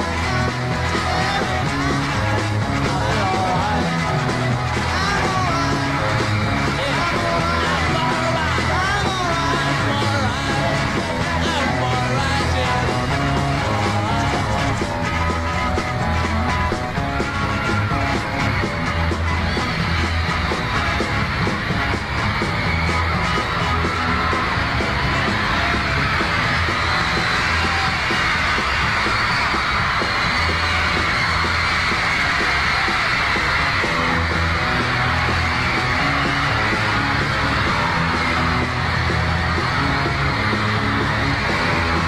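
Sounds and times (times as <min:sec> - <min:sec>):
crowd screaming: 0:00.0 - 0:42.0
live rock band playing: 0:00.0 - 0:42.0.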